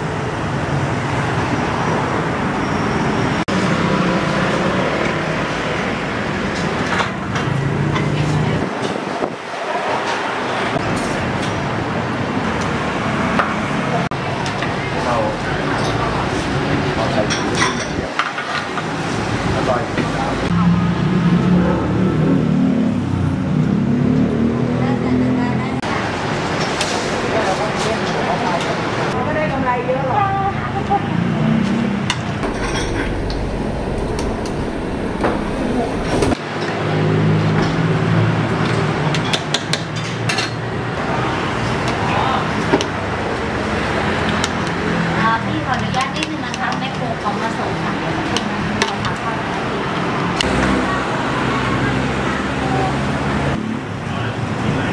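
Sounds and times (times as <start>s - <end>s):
traffic noise: 0.0s - 54.9s
people talking: 24.7s - 26.2s, 27.2s - 31.3s, 45.1s - 54.9s.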